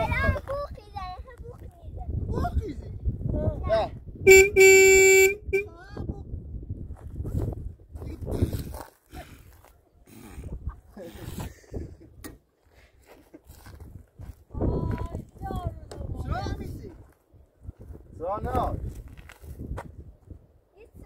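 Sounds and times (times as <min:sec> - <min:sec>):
people talking: 0:00.0 - 0:04.5, 0:14.6 - 0:16.9
truck horn blaring: 0:04.3 - 0:05.7.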